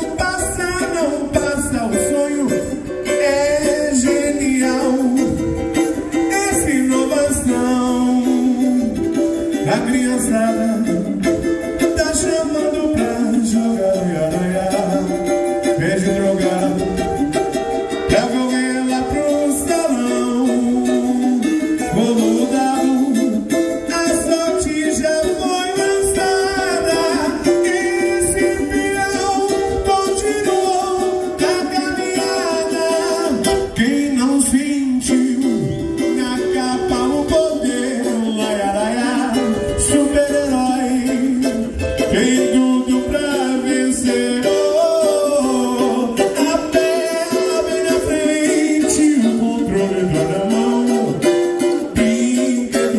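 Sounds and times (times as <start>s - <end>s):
person singing: 0.0s - 52.9s
small guitar strummed and picked: 0.0s - 52.9s.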